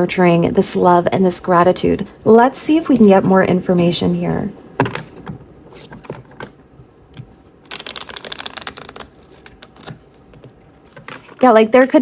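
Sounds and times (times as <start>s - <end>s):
cards riffle shuffling: 7.2s - 11.4s.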